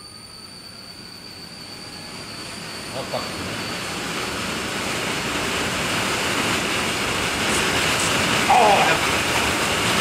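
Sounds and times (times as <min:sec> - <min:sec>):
faint rising whine: 0:00.0 - 0:10.0
electric motor and fan running: 0:01.0 - 0:10.0.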